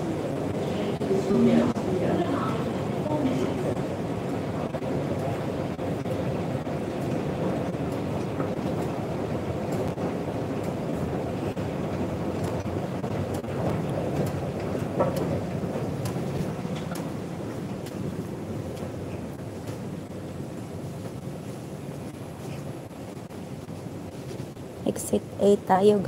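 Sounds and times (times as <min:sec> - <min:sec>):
escalator machinery rumble: 0:00.0 - 0:26.0.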